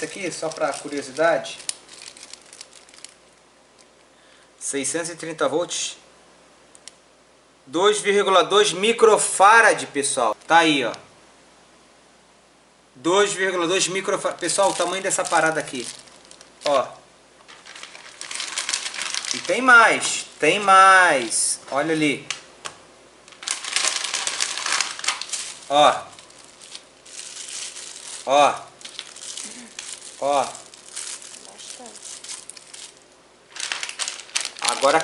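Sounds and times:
plastic bags crinkling: 0.0s - 4.0s, 14.2s - 16.8s, 17.4s - 21.8s, 23.2s - 35.0s.

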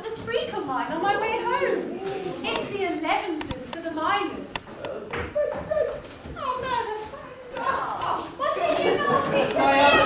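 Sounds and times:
children shouting: 7.5s - 10.0s.

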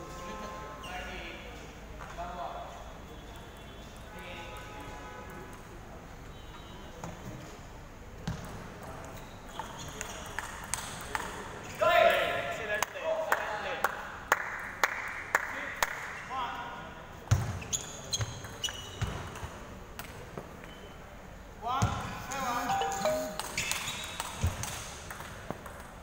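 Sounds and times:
voices in a large hall: 0.0s - 25.0s.

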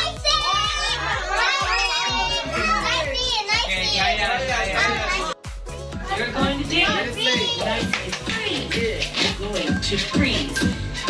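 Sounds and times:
children shouting and laughing: 0.0s - 5.4s
music with steady beat: 0.0s - 11.0s.

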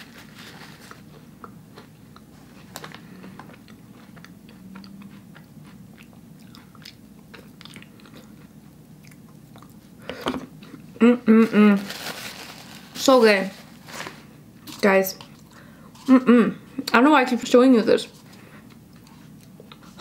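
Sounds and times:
person chewing: 0.9s - 11.0s, 18.2s - 20.0s.

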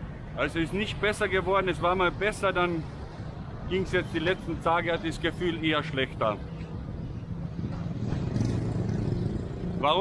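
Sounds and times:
vehicles passing: 0.0s - 10.0s.

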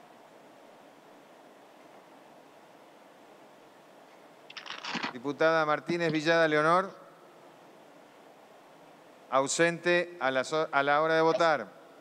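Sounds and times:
noisy rustle: 0.0s - 5.7s
microphone hiss: 0.0s - 12.0s
man speaking: 5.2s - 7.0s, 9.4s - 11.7s.

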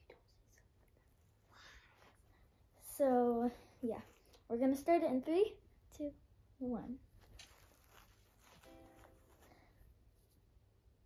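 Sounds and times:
faint rustles: 7.1s - 10.5s.

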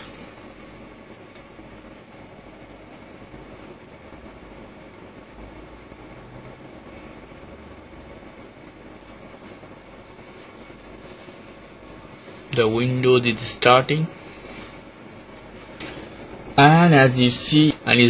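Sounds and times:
background hiss and hum: 0.0s - 18.0s.

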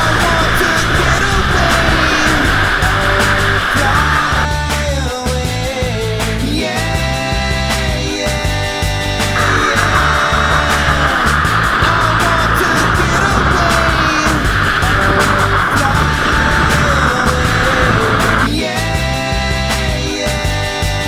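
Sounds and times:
loud distorted noise layer: 0.0s - 4.9s, 9.2s - 18.5s
rock song with drum beat: 0.0s - 21.0s
sliding guitar notes: 9.4s - 18.5s.

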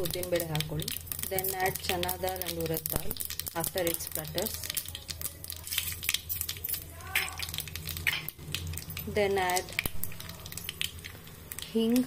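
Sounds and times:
seeds spluttering in hot oil: 0.0s - 12.0s.

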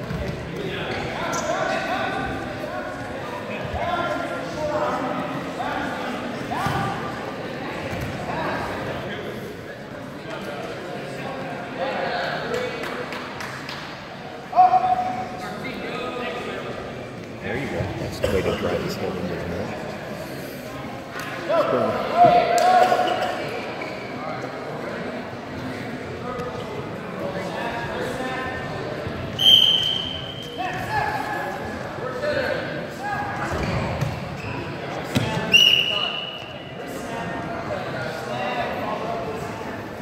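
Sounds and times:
shouting voices in echoing gym: 0.0s - 19.8s, 20.7s - 40.0s
referee's whistle blasts: 29.4s - 30.6s, 35.5s - 36.5s.

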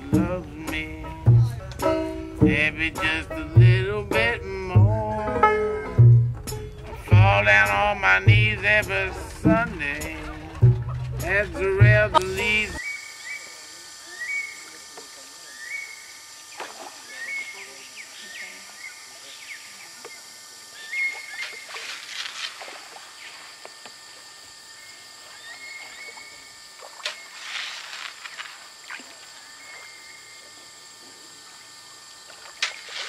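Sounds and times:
water splashing and sloshing: 9.3s - 11.8s, 16.5s - 17.1s, 21.5s - 23.9s, 25.8s - 29.9s, 32.3s - 33.0s.

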